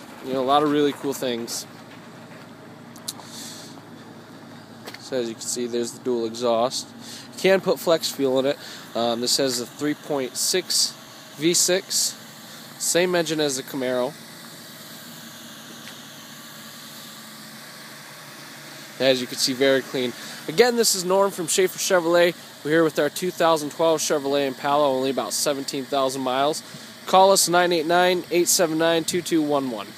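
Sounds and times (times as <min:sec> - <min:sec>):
car engine idling: 0:00.0 - 0:29.9
brief hiss: 0:03.0 - 0:03.8.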